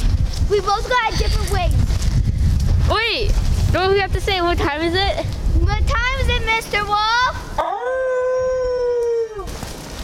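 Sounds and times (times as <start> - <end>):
outdoor noise: 0.0 - 10.0
wolf howl: 7.6 - 9.5.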